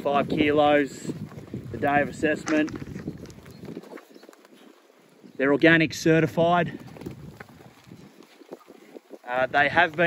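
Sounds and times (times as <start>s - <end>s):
faint wind noise: 0.0s - 10.0s
sheep hooves ticking on dirt: 0.0s - 10.0s.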